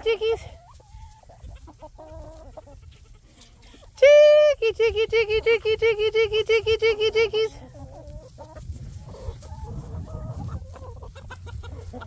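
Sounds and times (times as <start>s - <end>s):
hens clucking softly: 0.0s - 4.0s, 5.0s - 12.0s
woman's high-pitched chicken call: 0.0s - 12.0s.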